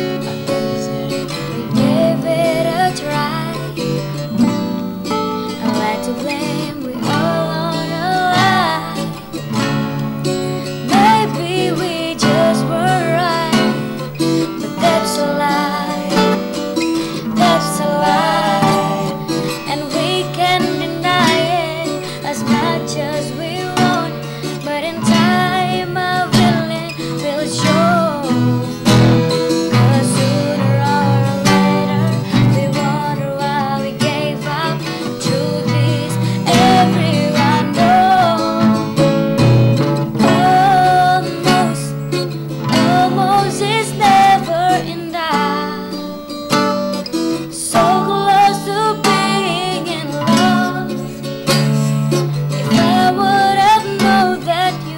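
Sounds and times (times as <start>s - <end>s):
acoustic guitar strumming: 0.0s - 54.9s
person singing: 0.0s - 54.9s.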